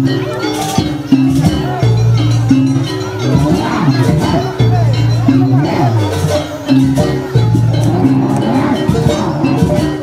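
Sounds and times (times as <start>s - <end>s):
percussion strokes: 0.0s - 10.0s.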